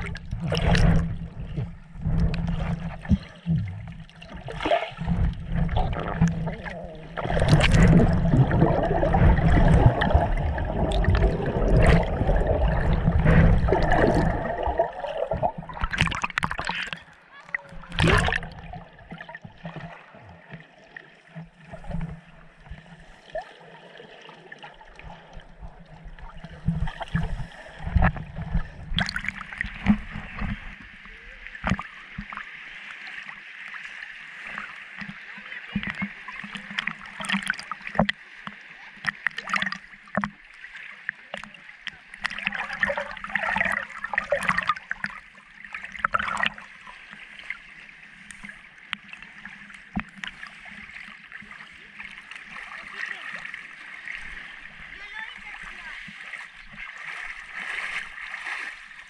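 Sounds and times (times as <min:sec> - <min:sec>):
underwater clicks and knocks: 0:00.0 - 0:19.9, 0:25.4 - 0:31.0, 0:31.6 - 0:32.5, 0:35.0 - 0:35.2, 0:35.8 - 0:46.6, 0:48.3 - 0:50.5
water rushing and gurgling: 0:00.0 - 0:59.0.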